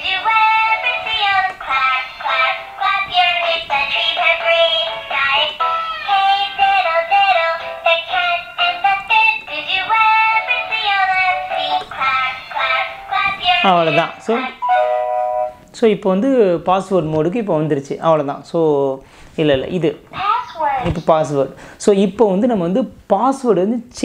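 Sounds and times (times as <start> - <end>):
electronic children's song from toy: 0.0 - 15.6.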